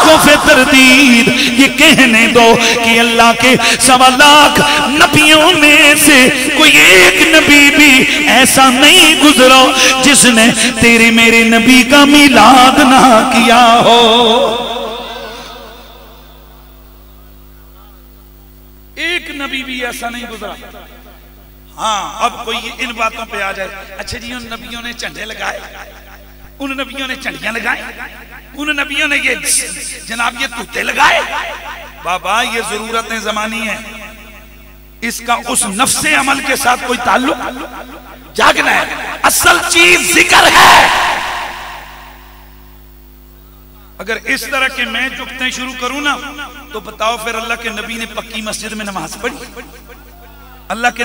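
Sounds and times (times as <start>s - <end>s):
man chanting over loudspeaker: 0.0s - 17.2s, 19.0s - 42.5s
electrical hum: 0.0s - 51.0s.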